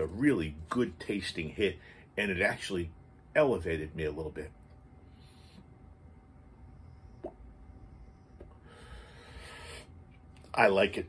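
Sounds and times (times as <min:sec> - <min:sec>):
soft breathy vape hiss: 0:05.0 - 0:06.0, 0:06.7 - 0:10.4.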